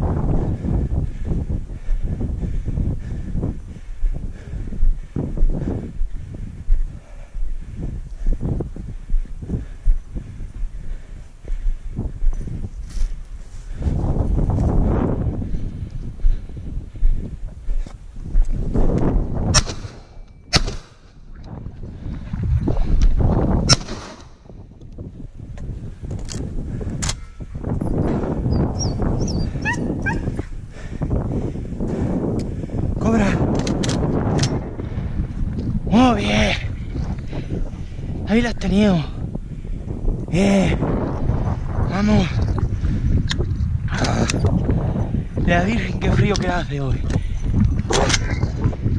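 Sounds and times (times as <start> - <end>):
rustling through low scrub: 0.0 - 48.9
dog: 29.4 - 30.5
sharp clicks: 33.5 - 34.6.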